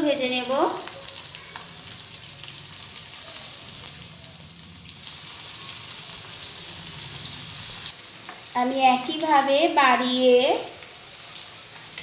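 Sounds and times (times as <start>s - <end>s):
oil sizzling and bubbling: 0.0s - 12.0s.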